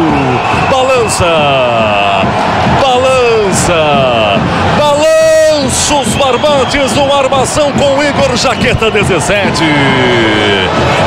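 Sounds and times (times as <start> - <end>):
man shouting excitedly: 2.8 - 10.7.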